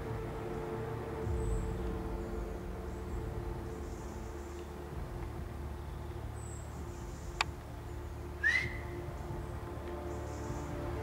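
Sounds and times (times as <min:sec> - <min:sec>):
short rising whistle: 0:08.4 - 0:08.9.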